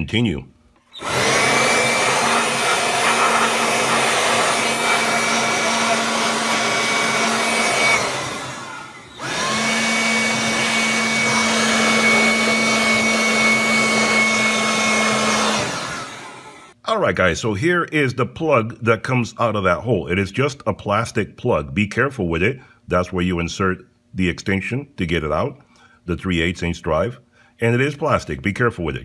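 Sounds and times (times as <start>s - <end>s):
air blower whooshing: 1.0s - 16.8s.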